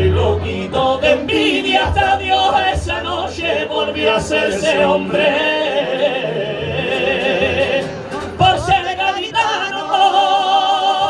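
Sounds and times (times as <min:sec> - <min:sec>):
men singing in harmony: 0:00.0 - 0:11.0
strummed acoustic guitar: 0:00.0 - 0:11.0.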